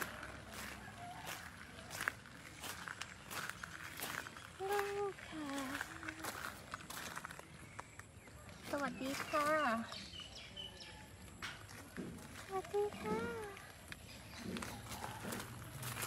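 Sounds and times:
woman greeting cat: 12.4 - 13.6.

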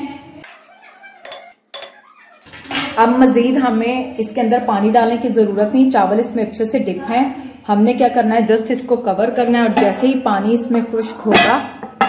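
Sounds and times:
metal spoon scraping a pot: 0.4 - 3.0
woman speaking: 3.0 - 11.8.

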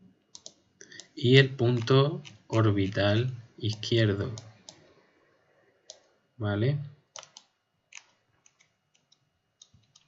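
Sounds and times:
mouse wheel clicking: 0.3 - 4.9, 5.8 - 6.1, 7.1 - 10.0.

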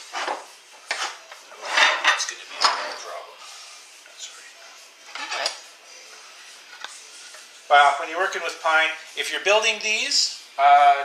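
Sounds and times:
metal clamps clinking and scraping: 5.1 - 5.6.

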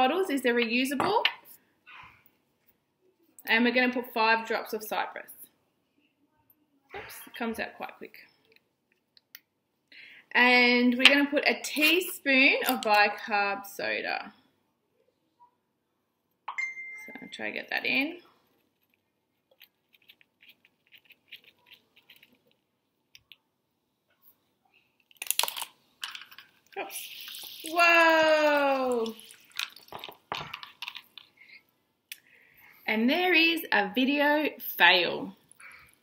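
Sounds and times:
liquid fizzing in bottle: 26.1 - 31.3.

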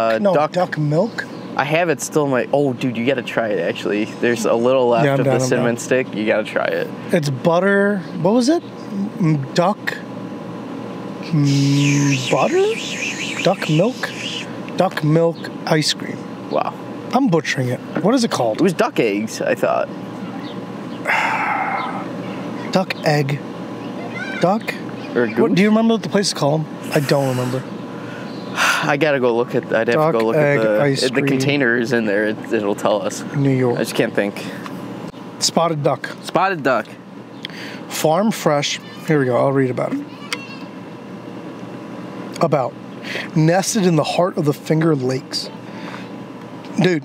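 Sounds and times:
outdoor background hum: 0.0 - 47.0.

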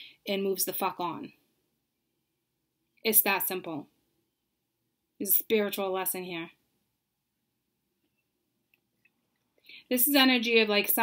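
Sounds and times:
woman speaking: 0.2 - 1.4, 3.0 - 3.9, 5.2 - 6.6, 9.9 - 11.0.

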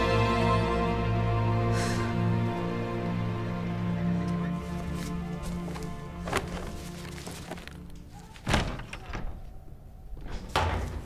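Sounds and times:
door banging shut: 8.4 - 9.5.

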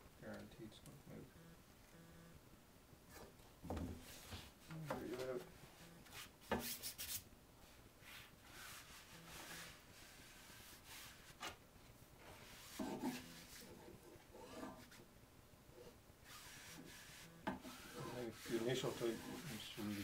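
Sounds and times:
iron swishing over fabric: 16.3 - 20.0.

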